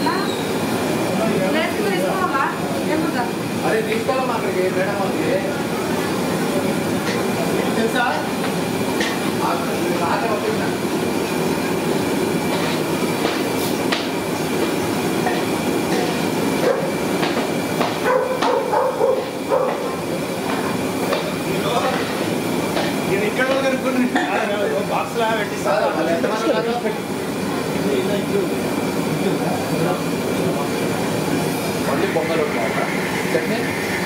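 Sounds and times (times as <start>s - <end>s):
voices talking: 18.8s - 34.0s.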